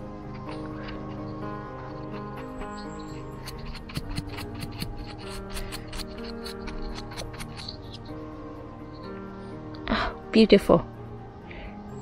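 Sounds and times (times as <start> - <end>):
background music with held notes: 0.0 - 12.0
brush scratching mushroom stem: 0.3 - 8.2.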